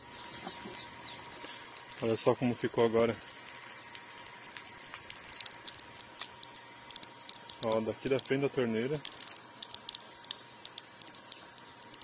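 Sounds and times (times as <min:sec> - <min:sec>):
hose water spraying on plants: 0:00.0 - 0:12.0.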